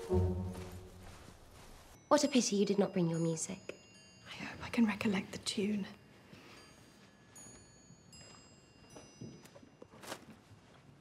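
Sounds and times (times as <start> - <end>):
clothing rustling: 0.0 - 2.0, 6.5 - 11.0
faint footsteps: 0.0 - 2.0.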